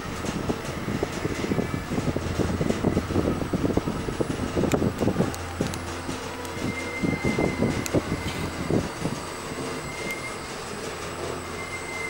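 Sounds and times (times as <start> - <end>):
low knocks and rumbles: 0.0 - 11.5
elevator low hum: 0.0 - 12.0
thin high whine: 1.4 - 12.0.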